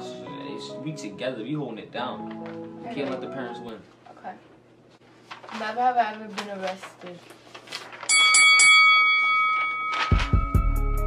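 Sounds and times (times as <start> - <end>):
bell ringing with high tones: 8.1 - 10.2.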